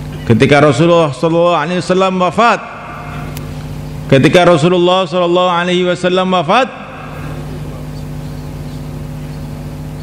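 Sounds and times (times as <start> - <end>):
motor humming with low pulsing: 0.0 - 10.0.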